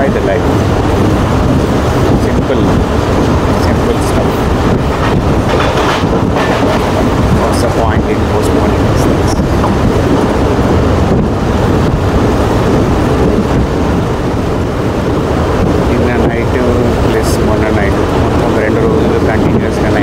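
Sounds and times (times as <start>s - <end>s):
train rumble: 0.0s - 20.0s
wind buffeting microphone: 0.0s - 20.0s.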